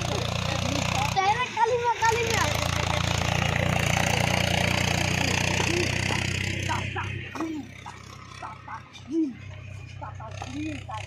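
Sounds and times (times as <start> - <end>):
voices calling: 0.0 - 11.0.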